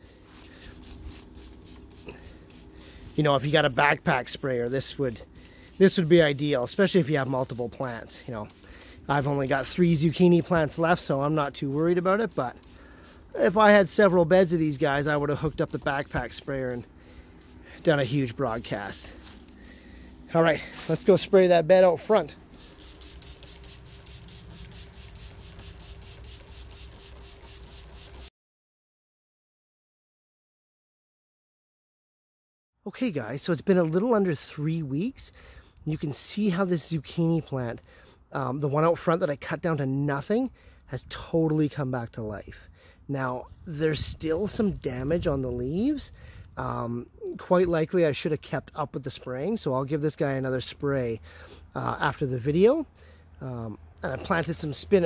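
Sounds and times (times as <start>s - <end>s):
steady low hum: 0.0s - 28.3s
spray bottle squirts: 0.3s - 3.2s, 15.7s - 17.9s, 22.4s - 28.3s
fast even ticking: 22.6s - 28.3s.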